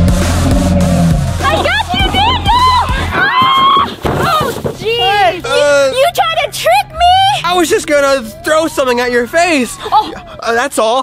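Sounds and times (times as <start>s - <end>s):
background music with bass: 0.0s - 3.4s, 4.8s - 10.4s.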